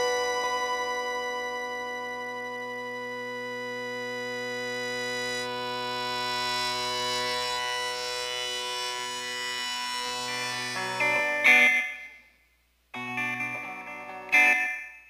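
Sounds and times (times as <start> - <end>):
instrumental rock synthesizer chord: 0.0 - 12.1.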